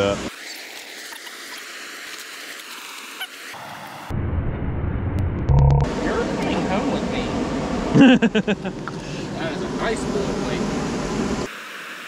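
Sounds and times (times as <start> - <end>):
low rumbling noise: 4.1 - 11.5.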